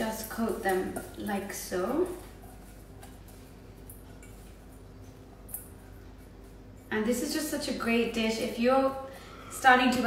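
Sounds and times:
leaves rustling in metal bowl: 0.0 - 8.9
low steady hum: 0.0 - 10.0.

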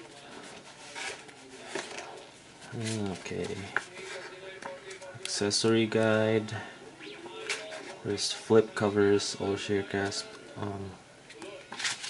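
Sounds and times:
paper and cardboard rustling: 0.0 - 5.1, 7.3 - 8.9, 11.4 - 12.0.

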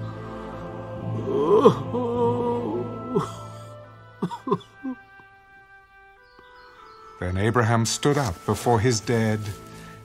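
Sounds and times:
person sobbing: 1.2 - 5.0.

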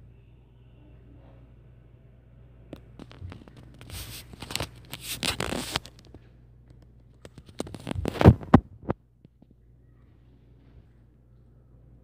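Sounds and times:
faint low hum: 0.0 - 12.0
phone handling rubbing and scraping: 3.0 - 6.2, 7.1 - 9.0.

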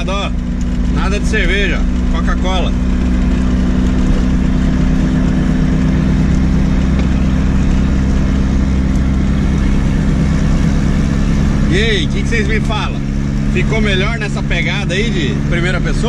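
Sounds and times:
car engine droning inside cabin: 0.0 - 16.0.

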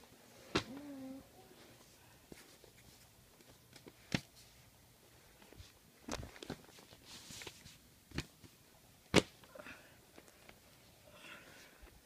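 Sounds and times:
rustles of handling: 5.3 - 8.6.

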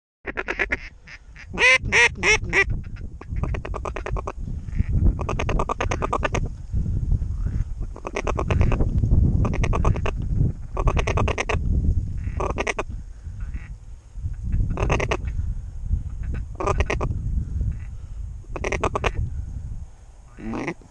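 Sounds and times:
duck quacking: 0.3 - 6.5, 7.4 - 8.8, 9.4 - 10.2, 10.8 - 11.6, 12.2 - 13.8, 14.6 - 15.4, 16.2 - 17.1, 18.5 - 19.2, 20.3 - 20.9
wind rumble on microphone: 0.6 - 20.9.

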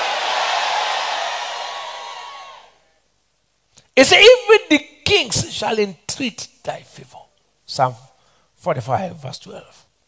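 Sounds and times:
congregation cheering and shouting: 0.0 - 2.8.

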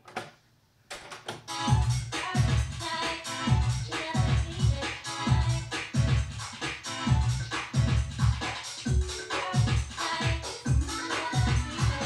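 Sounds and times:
cassette music playback: 0.9 - 12.0
heavy bass beat: 1.5 - 12.0.

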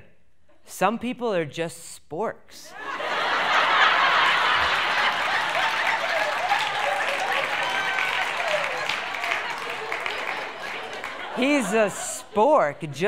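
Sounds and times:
audience laughing: 2.7 - 13.0
audience applauding: 3.0 - 12.6.

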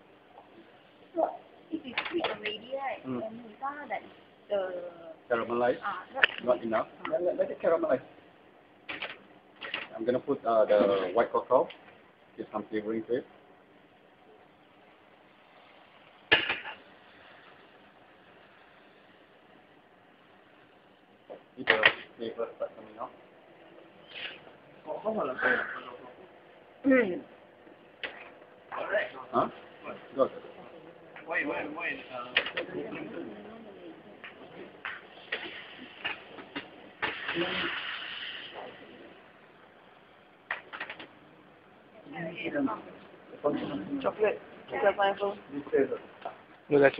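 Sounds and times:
faint steady sizzle: 0.0 - 46.9
food sizzling in pan: 15.0 - 21.6, 34.8 - 39.0.

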